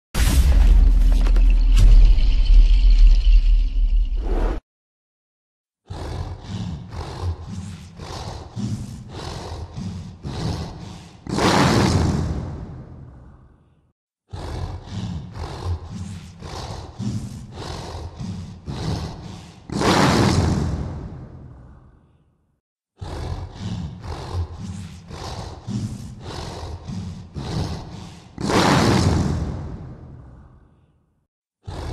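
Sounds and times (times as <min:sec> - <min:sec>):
rough heavy breathing: 0:05.9 - 0:11.4, 0:13.3 - 0:19.8, 0:23.0 - 0:28.5.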